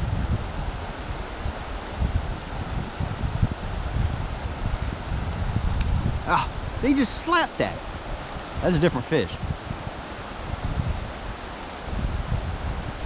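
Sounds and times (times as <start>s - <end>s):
wind buffeting microphone: 0.0s - 13.0s
creek running over stones: 3.7s - 9.3s.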